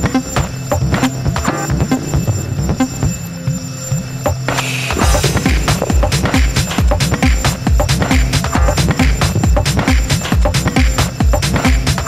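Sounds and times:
techno kick-drum beat: 0.0s - 2.1s, 4.2s - 12.0s
sustained synth tones: 0.0s - 11.9s
crisp high percussion: 0.0s - 12.0s.

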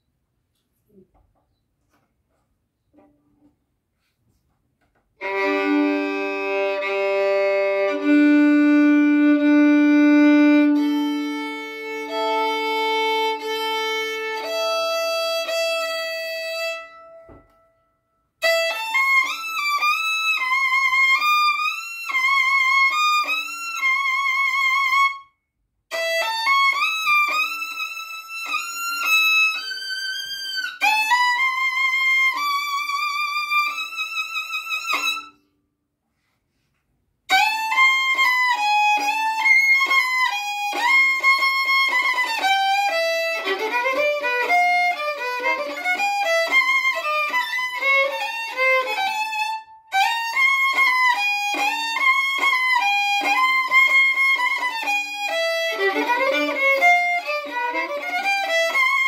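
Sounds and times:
violin melody with vibrato: 5.2s - 17.6s, 18.4s - 25.3s, 25.9s - 35.4s, 37.3s - 59.0s
violin bowed: 5.2s - 17.7s, 18.4s - 25.3s, 25.9s - 35.4s, 37.3s - 59.0s.

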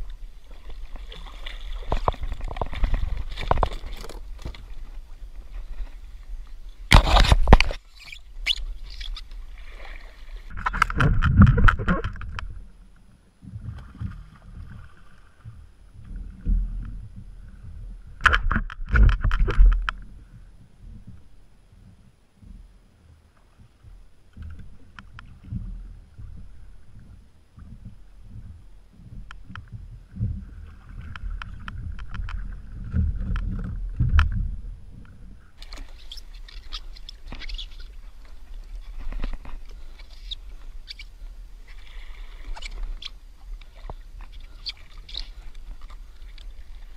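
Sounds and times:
water against kayak hull: 0.0s - 46.9s
bump on kayak: 0.8s - 6.1s, 6.8s - 9.3s, 10.4s - 12.6s
wind on microphone: 10.4s - 12.7s, 23.6s - 35.6s.

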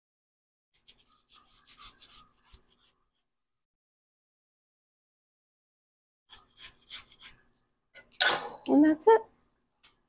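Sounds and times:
knife rasping through watermelon: 0.8s - 3.3s, 6.3s - 7.5s.

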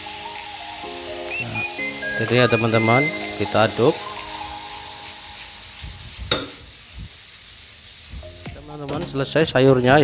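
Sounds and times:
vegetables sizzling in a frying pan: 0.0s - 10.0s.

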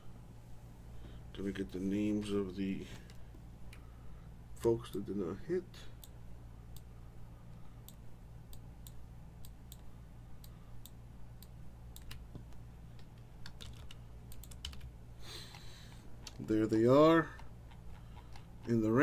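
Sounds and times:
steady low hum: 0.0s - 19.0s
computer keyboard keys clicking: 12.0s - 12.4s, 13.0s - 14.9s.

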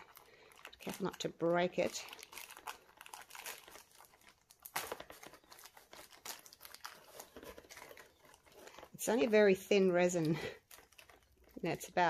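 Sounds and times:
plastic film crinkling and crackling: 0.0s - 12.0s.

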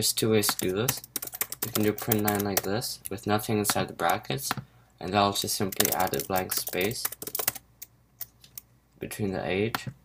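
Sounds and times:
typing on computer keyboard: 0.5s - 2.7s, 5.6s - 8.6s.

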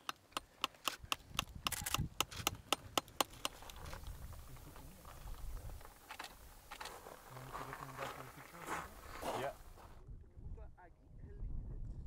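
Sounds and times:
wind rumble on microphone: 3.5s - 6.0s, 9.0s - 12.0s.

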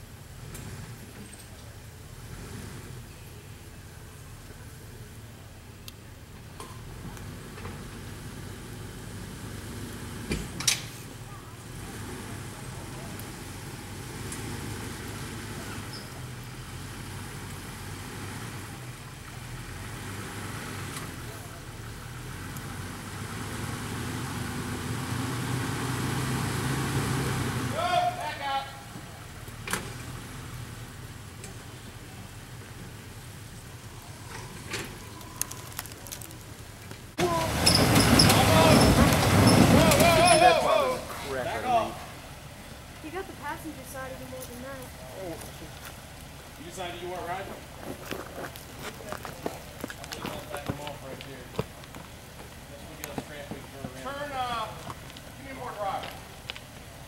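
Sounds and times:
engine revving hard: 22.2s - 27.8s.

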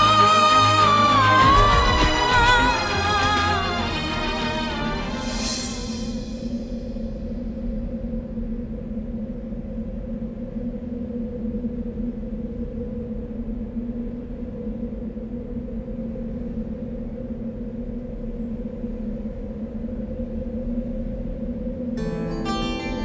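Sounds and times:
low sustained drone: 0.0s - 23.0s
steady low rumble: 1.1s - 22.0s.

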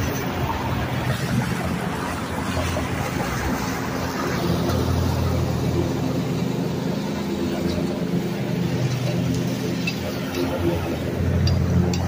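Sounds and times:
riding mower engine humming: 0.0s - 12.0s.

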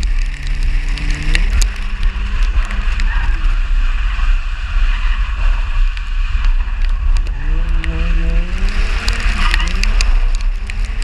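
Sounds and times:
car engine revving: 0.0s - 11.0s
road and tyre hiss: 0.0s - 11.0s.

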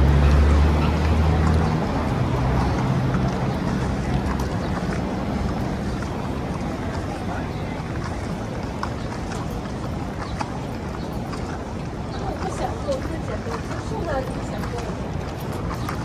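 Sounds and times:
city street traffic: 0.0s - 16.0s
vehicle engine hum: 0.0s - 16.0s
footsteps on concrete: 1.0s - 16.0s.

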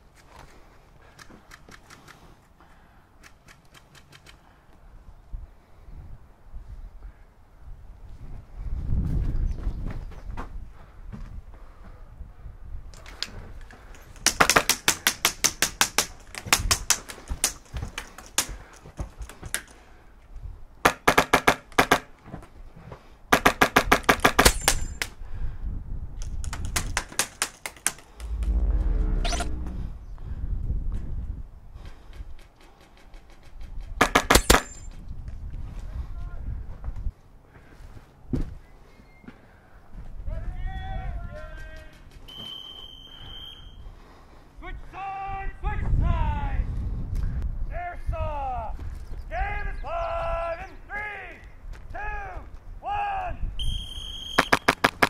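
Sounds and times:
low rumbles of movement: 28.0s - 31.2s.

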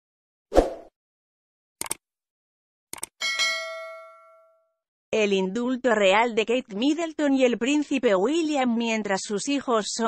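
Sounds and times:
quick clicks: 1.8s - 2.0s, 2.9s - 3.2s
bright bell ding: 3.2s - 4.8s.

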